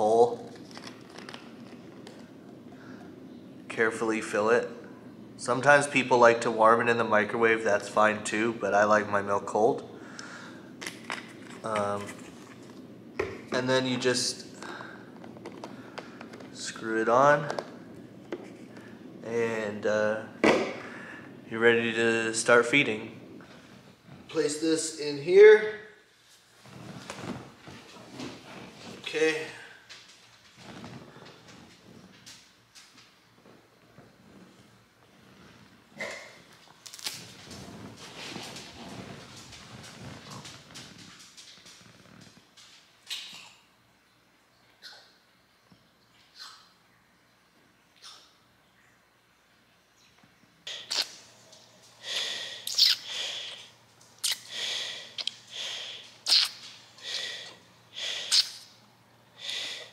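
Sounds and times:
soft rustling: 0.0 - 25.1, 26.1 - 43.0
noisy breaths: 2.3 - 3.6, 9.9 - 10.8, 13.8 - 16.5, 20.1 - 21.9, 51.8 - 56.2, 56.9 - 58.6, 59.3 - 59.9
person slurping from bottle: 52.7 - 56.5.

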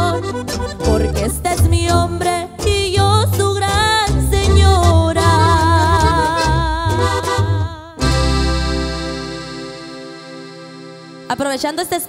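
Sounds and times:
bass: 0.0 - 11.5.

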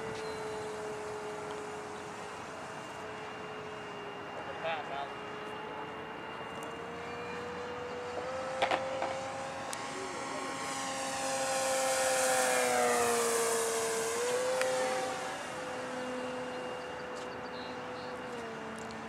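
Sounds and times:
model plane motor whining: 0.0 - 19.0.

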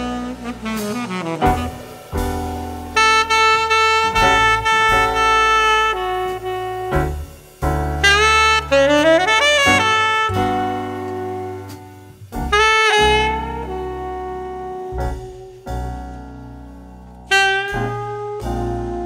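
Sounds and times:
bass: 0.0 - 19.0
drums: 0.0 - 19.0
jazz saxophone: 0.0 - 19.0
piano: 0.0 - 19.0.

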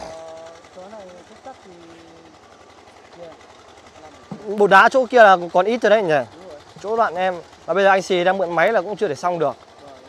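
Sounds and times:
small engine humming: 0.0 - 10.0.

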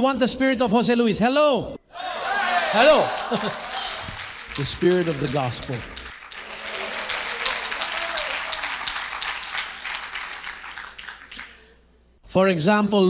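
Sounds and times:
crowd applauding: 2.0 - 12.0.

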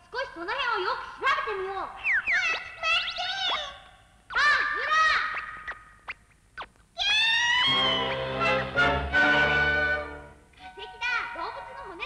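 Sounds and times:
swooping electronic tones: 5.2 - 6.8.

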